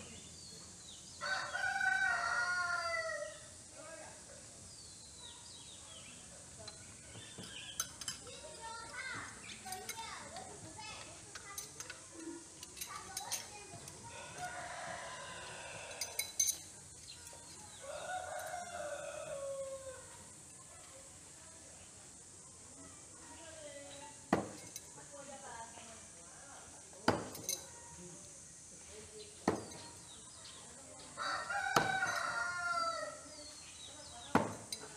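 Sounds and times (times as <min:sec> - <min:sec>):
rooster crowing: 0:01.2 - 0:03.4, 0:14.1 - 0:16.2, 0:17.8 - 0:20.1, 0:31.2 - 0:33.2
metal knives clinking: 0:15.9 - 0:17.4, 0:27.2 - 0:27.8.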